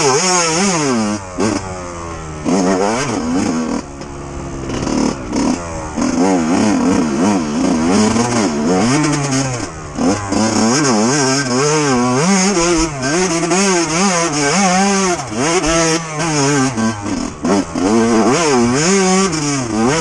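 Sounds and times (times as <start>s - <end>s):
two-stroke engine revving: 0.0s - 20.0s.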